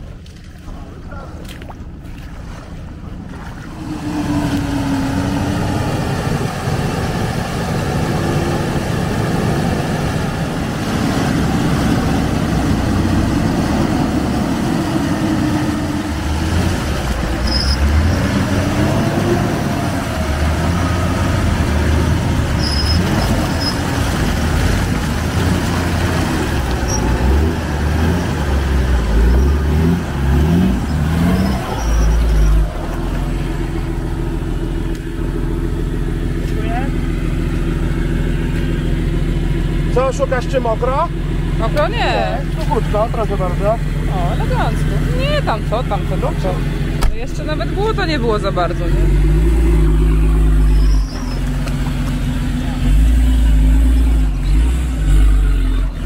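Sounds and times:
truck engine revving in mud: 0:00.7 - 0:56.0
engine idling: 0:11.8 - 0:56.0.

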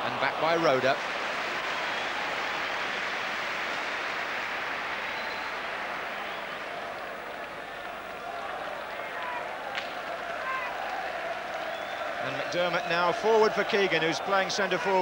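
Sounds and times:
stadium crowd voices: 0:00.0 - 0:15.0.

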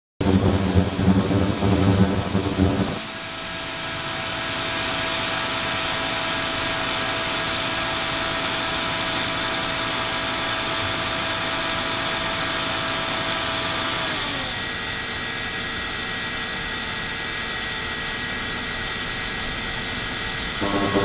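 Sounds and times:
steady mid-pitched tone: 0:00.2 - 0:03.1, 0:20.6 - 0:21.0.

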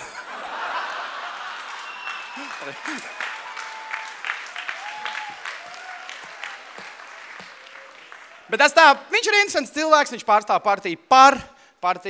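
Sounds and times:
audience laughter: 0:00.0 - 0:03.2
audience applause: 0:00.0 - 0:08.6.

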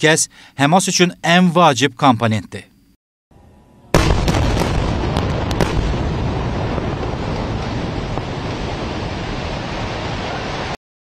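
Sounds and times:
large explosion blast: 0:03.9 - 0:10.8
sharp cracks: 0:04.0 - 0:07.8.

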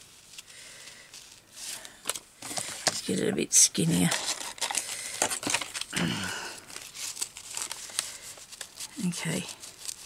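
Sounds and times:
paper and fabric rustling: 0:00.0 - 0:10.0.

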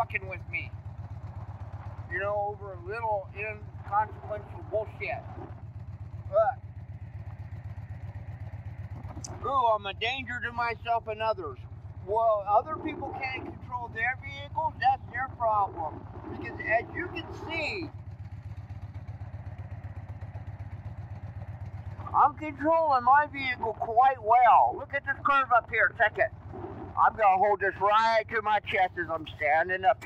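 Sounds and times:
motorcycle engine rumbling: 0:00.0 - 0:30.0.

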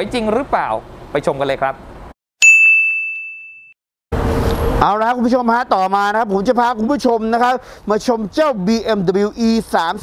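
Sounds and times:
bell-like ding: 0:02.4 - 0:03.8
man's voice: 0:04.8 - 0:10.0.

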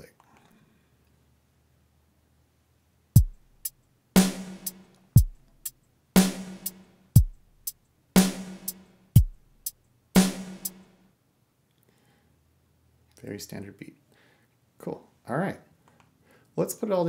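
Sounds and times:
electronic rock drum beat: 0:03.2 - 0:11.0.

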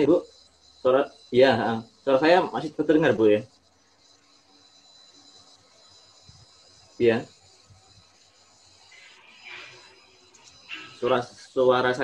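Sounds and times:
faint steady hiss: 0:00.0 - 0:12.0
thin steady high tone: 0:00.0 - 0:12.0.

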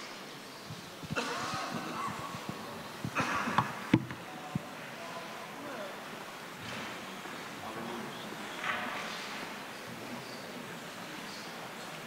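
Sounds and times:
people praying in low voices: 0:00.0 - 0:12.0
soft knocks of people moving: 0:00.7 - 0:04.7.

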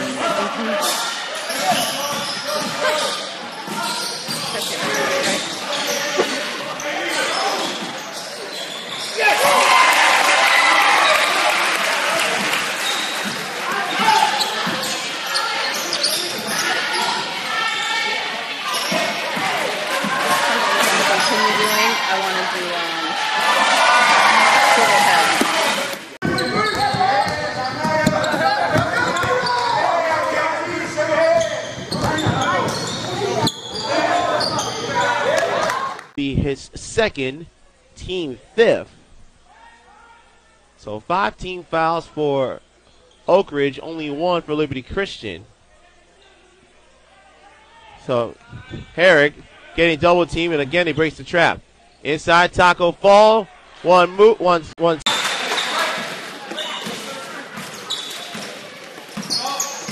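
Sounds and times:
people shouting in gymnasium: 0:09.0 - 0:36.1
basketball bouncing on gym floor: 0:26.2 - 0:29.7.

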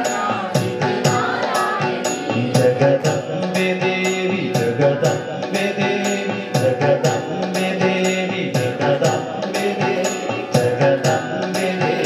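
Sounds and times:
percussion beat: 0:00.0 - 0:12.0.

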